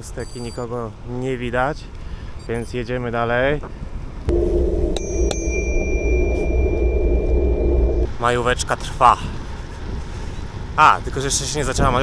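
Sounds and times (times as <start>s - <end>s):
low rumble of moving bike: 3.3s - 12.0s
bicycle bell ringing: 5.0s - 8.0s.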